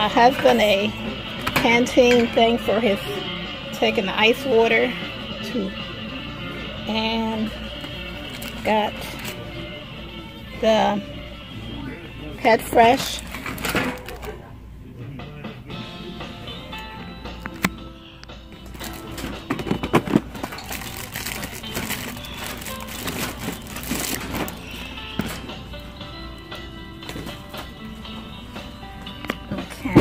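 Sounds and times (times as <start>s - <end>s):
background music: 0.0s - 30.0s.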